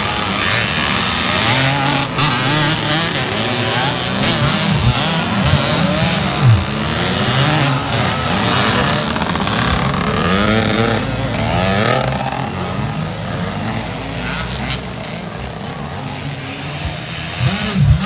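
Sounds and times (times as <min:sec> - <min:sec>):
dirt bike engines revving: 0:00.0 - 0:18.0.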